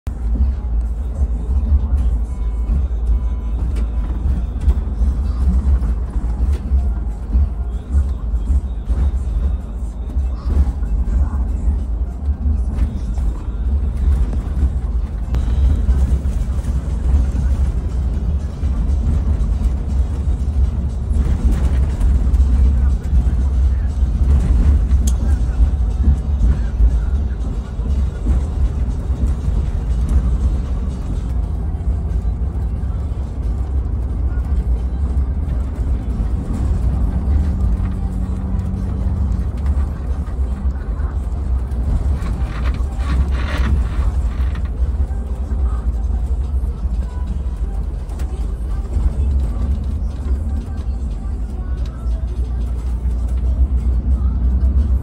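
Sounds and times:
bus engine rumble: 0.0s - 55.0s
road noise: 0.0s - 55.0s.

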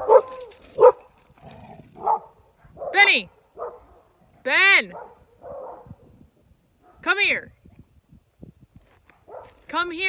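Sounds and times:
dog barking: 0.0s - 1.1s, 2.0s - 3.0s, 3.6s - 4.1s, 4.9s - 6.0s, 9.3s - 9.6s.

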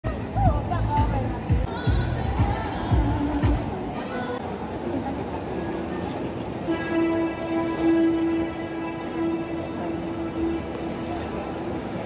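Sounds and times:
band holding steady note: 6.7s - 12.0s.

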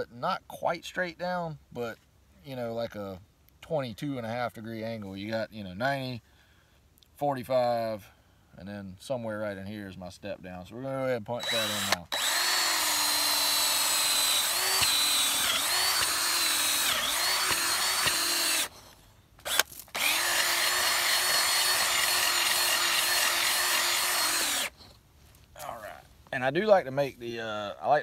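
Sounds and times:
power drill whining into soil: 11.4s - 25.0s.

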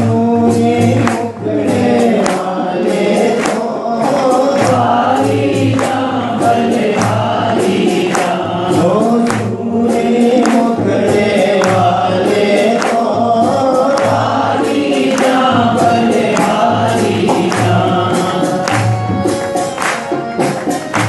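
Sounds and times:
short percussion strikes: 0.0s - 21.0s
steady low drum beat: 0.0s - 21.0s
voices singing together: 0.0s - 21.0s.

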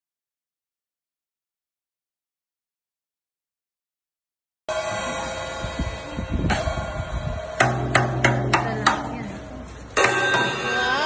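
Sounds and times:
drumstick hitting drum kit: 7.6s - 11.0s.

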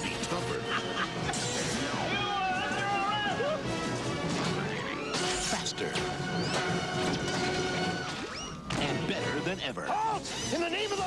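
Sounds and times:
trailer music: 0.0s - 9.6s.

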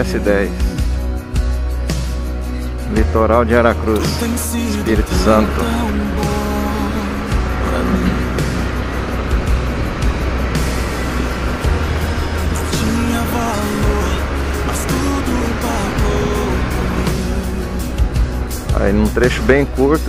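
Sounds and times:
motorcycle accelerating: 3.8s - 19.7s
worship song with singing: 3.9s - 8.8s, 12.5s - 18.9s.

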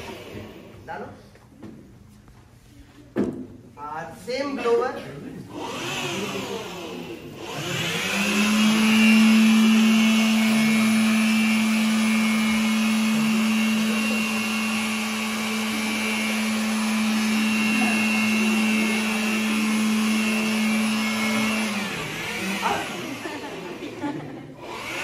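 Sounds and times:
electric blower motor hum: 0.0s - 0.8s, 5.5s - 25.0s.

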